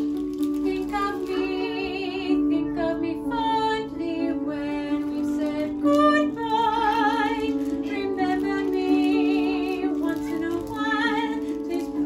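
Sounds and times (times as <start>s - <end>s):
woman singing a ballad: 0.6s - 12.0s.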